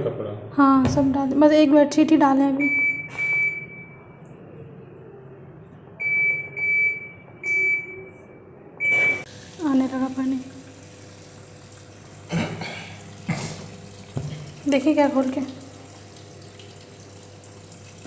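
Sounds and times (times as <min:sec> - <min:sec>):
washing machine control panel beeps: 0:02.6 - 0:04.1, 0:06.0 - 0:09.3.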